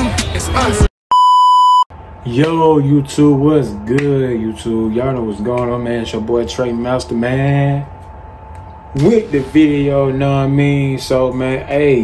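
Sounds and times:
hip hop music with rapping: 0:00.0 - 0:00.9, 0:02.2 - 0:08.1, 0:09.0 - 0:12.0
high electronic beep: 0:01.1 - 0:01.9.

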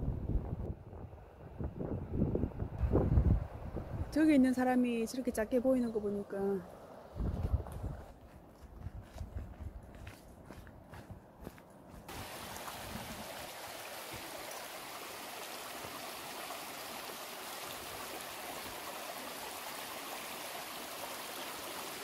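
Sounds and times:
footsteps on gravel: 0:07.6 - 0:12.2
stream rushing over stones: 0:12.1 - 0:22.0.

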